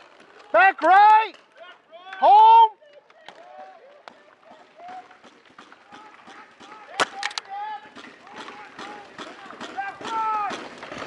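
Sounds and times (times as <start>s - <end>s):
distant players shouting: 0.4s - 11.0s.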